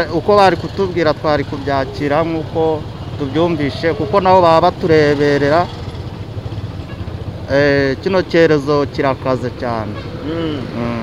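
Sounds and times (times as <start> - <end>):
man speaking: 0.0 - 5.8, 7.5 - 11.0
motorcycle engine noise: 0.0 - 11.0.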